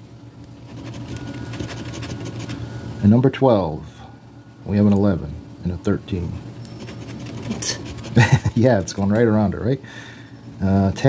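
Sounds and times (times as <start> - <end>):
steady low hum: 0.0 - 11.0
coin scratching lottery ticket: 0.7 - 2.6, 6.7 - 9.0.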